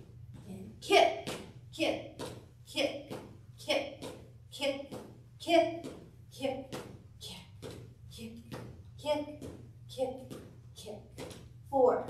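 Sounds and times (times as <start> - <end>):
woman speaking short syllables: 11.7 - 12.0.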